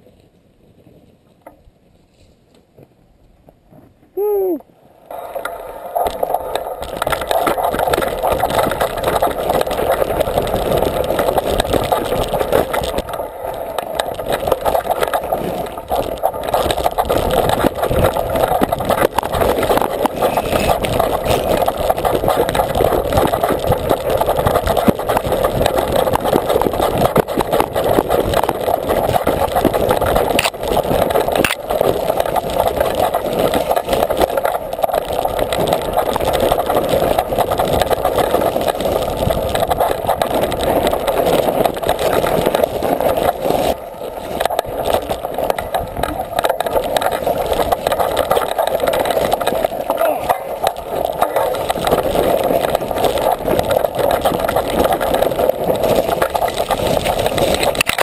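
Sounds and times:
bike rattling over rocky trail: 5.2s - 58.0s.

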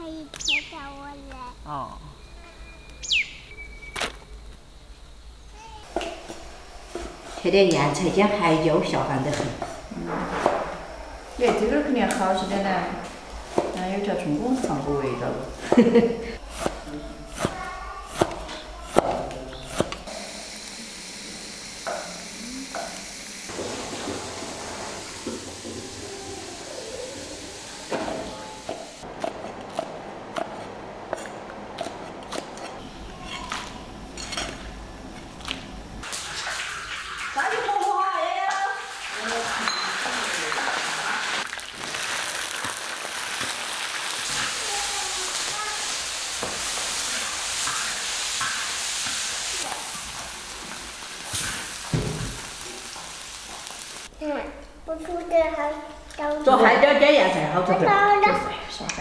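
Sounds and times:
food sizzling in a wok: 5.6s - 29.0s, 36.0s - 54.4s.

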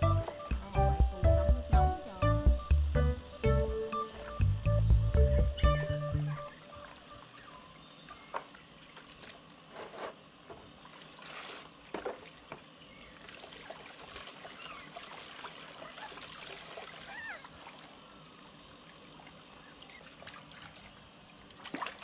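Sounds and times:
water sloshing in plastic basin: 8.1s - 18.0s, 19.2s - 22.0s
sharp water splashes: 10.9s - 12.4s, 13.2s - 18.0s, 18.9s - 22.0s.

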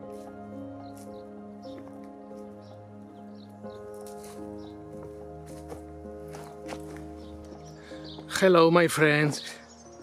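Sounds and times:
soft sustained music: 0.0s - 10.0s.

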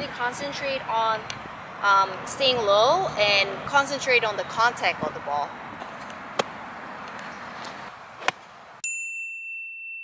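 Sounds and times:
golf club striking ball: 8.2s - 8.5s
high ringing chime: 8.8s - 10.0s.

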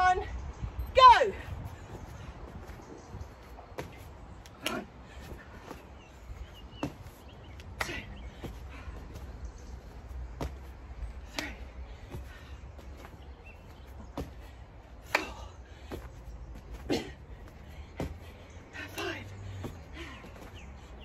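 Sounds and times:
hands and body slapping mat: 2.4s - 21.0s.

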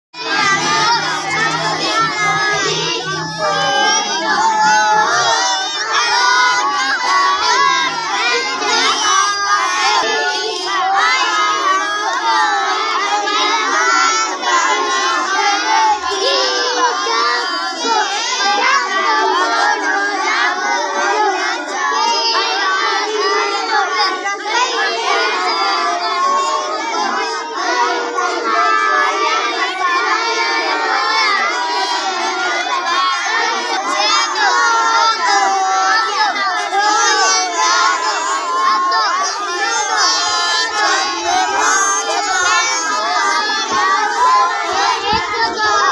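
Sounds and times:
children reading aloud: 0.2s - 45.9s.

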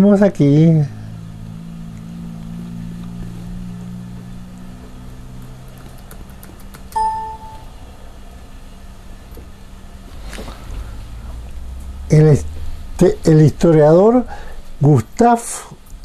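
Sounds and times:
low steady hum: 0.0s - 16.0s
short electronic beep: 7.0s - 7.8s.

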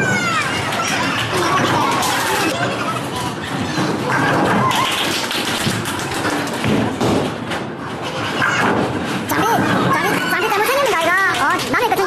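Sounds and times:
voices in a hall: 0.0s - 12.0s
bowling balls and pins knocking: 3.4s - 10.6s.

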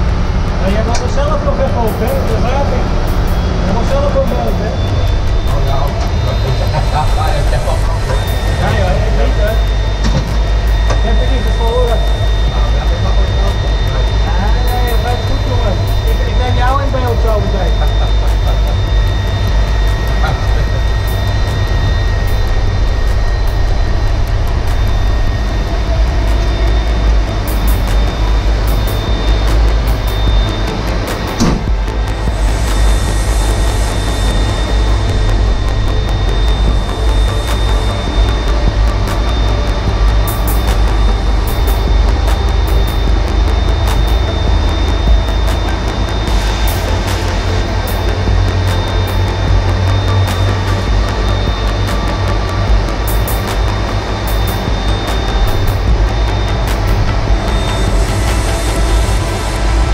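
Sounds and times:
jet engines running: 0.0s - 59.9s.

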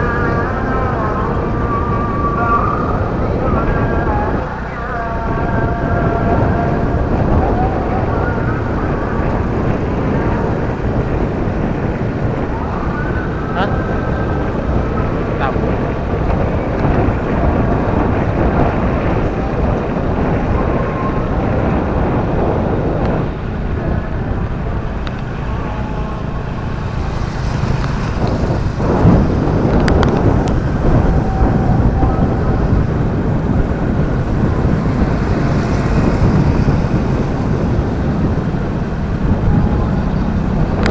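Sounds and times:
motorcycle engine: 0.0s - 40.9s
road noise: 0.0s - 40.9s
wind rushing over microphone: 0.0s - 40.9s.

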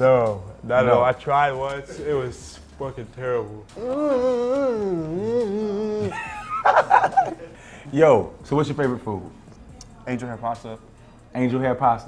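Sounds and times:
people laughing: 3.8s - 7.8s.

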